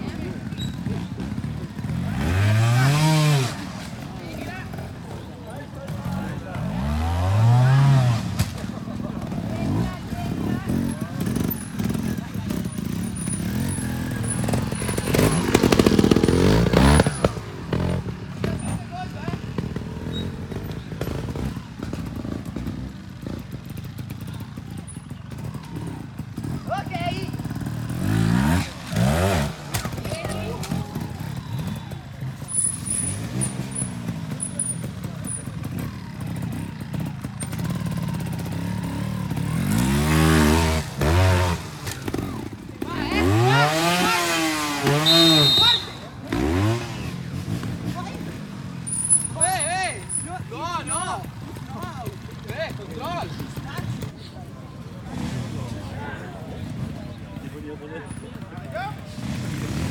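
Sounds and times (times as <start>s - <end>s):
motorcycle engines idling and revving: 0.0s - 59.9s.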